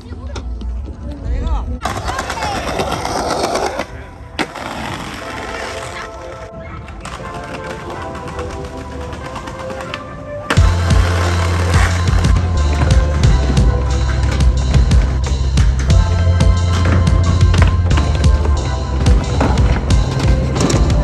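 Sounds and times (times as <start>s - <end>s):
skateboard wheels clattering: 1.8s - 21.0s
music with heavy bass beat: 10.6s - 21.0s.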